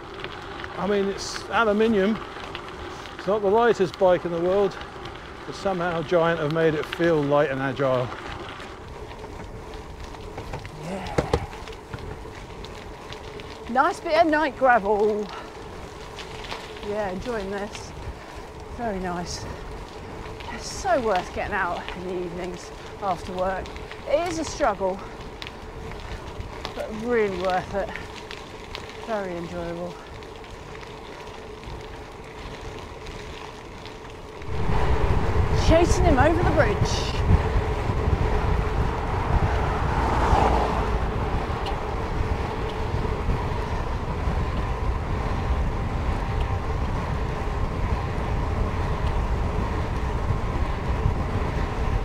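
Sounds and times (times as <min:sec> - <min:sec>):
bike tyres rolling on gravel: 0:00.0 - 0:52.0
loud low rumble: 0:34.3 - 0:42.6.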